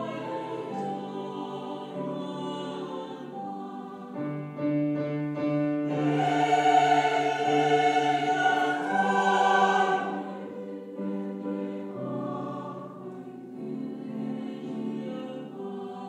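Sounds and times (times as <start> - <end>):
vocal ensemble singing: 0.0 - 4.6, 5.8 - 16.0
piano accompaniment: 0.0 - 16.0.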